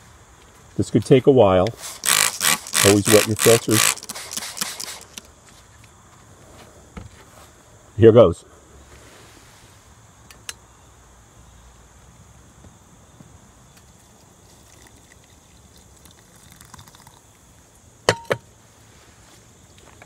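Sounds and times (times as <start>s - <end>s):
liquid trickling into a funnel: 14.4s - 17.6s
glass beaker knocking down: 18.1s - 18.4s.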